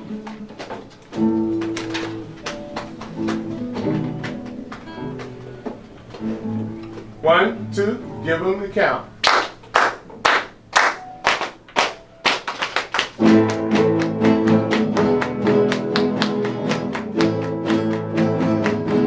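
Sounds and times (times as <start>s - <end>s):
acoustic guitars playing: 0.0s - 19.0s.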